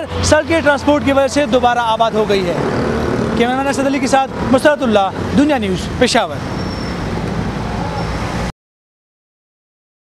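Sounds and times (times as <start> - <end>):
man's voice: 0.0 - 2.7, 3.3 - 6.4
road traffic rumble: 0.0 - 8.5.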